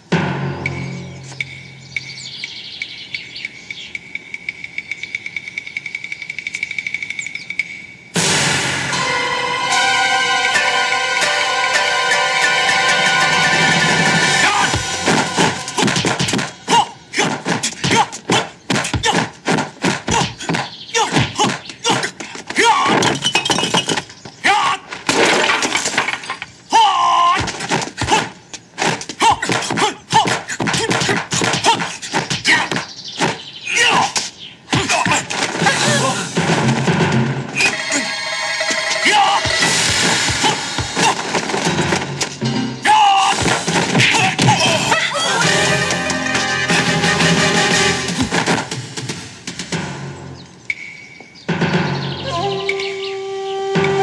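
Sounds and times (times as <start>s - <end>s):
deep drum hit: 0.0s - 2.2s
loud film score music: 0.0s - 5.0s, 8.2s - 17.1s, 35.4s - 54.0s
birds chirping: 0.0s - 8.2s, 11.9s - 24.9s, 26.4s - 36.4s, 48.7s - 54.0s
high ticking pulse: 0.0s - 8.2s
person shouting: 14.4s - 14.8s, 16.7s - 19.3s, 42.8s - 43.4s, 44.1s - 45.6s
debris rattling down: 22.9s - 24.2s, 24.9s - 26.6s
window glass smashing: 23.0s - 24.1s, 24.9s - 26.5s.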